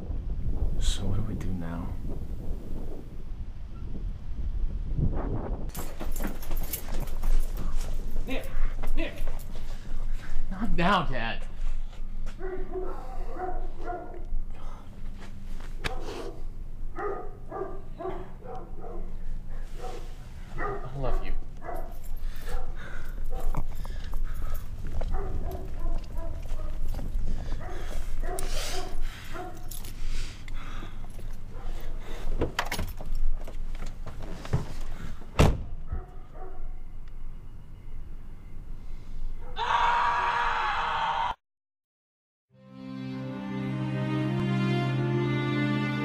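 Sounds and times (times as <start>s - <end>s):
low rumble: 0.0s - 5.7s
car door shutting: 34.5s - 35.8s
music: 42.5s - 46.0s.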